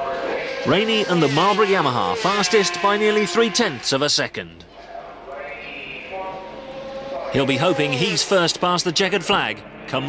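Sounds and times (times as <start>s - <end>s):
distant racing motorcycle engine: 0.0s - 3.9s, 5.5s - 10.0s.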